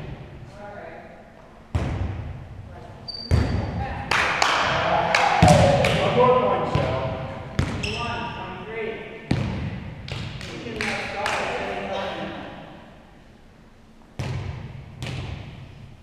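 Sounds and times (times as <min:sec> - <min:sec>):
volleyball smacks echoing in gym: 0:01.7 - 0:02.5, 0:03.2 - 0:08.2, 0:09.2 - 0:11.6, 0:14.2 - 0:15.9
players shouting: 0:04.5 - 0:07.1.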